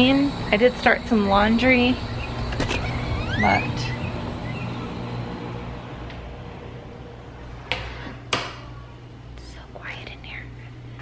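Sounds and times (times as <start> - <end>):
steady low hum: 0.0 - 11.0
door opening and shutting: 2.3 - 4.0, 7.5 - 8.8.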